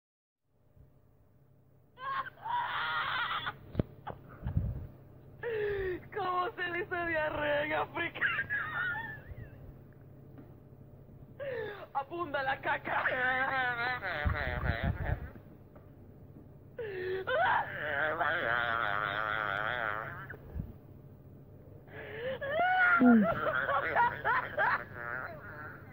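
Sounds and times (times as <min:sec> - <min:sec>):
voice wailing with vibrato: 0:22.6 - 0:23.5.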